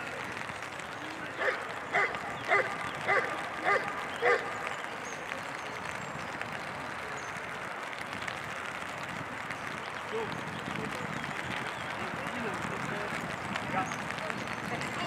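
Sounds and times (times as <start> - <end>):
dog barking: 1.4 - 4.6.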